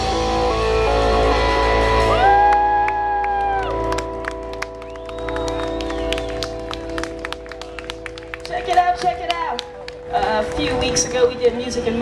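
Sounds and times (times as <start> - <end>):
audience whooping: 0.6 - 8.4
scattered clapping: 2.5 - 11.2.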